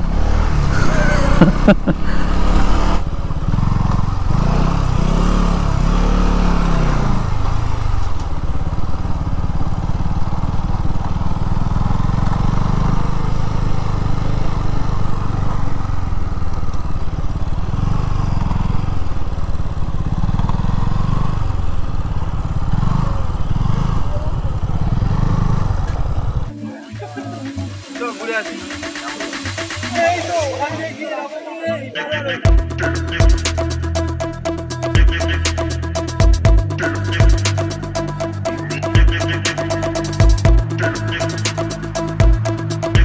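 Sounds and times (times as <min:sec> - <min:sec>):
motorcycle engine revving: 0:00.0 - 0:31.0, 0:32.5 - 0:43.0.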